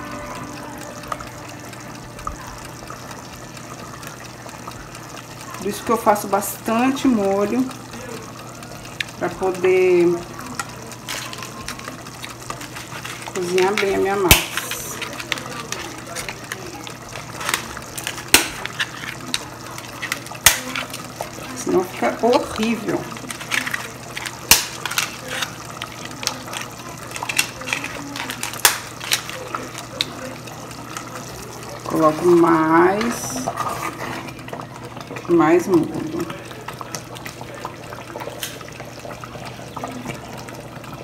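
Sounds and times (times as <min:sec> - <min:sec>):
sauce bubbling: 0:00.0 - 0:41.0.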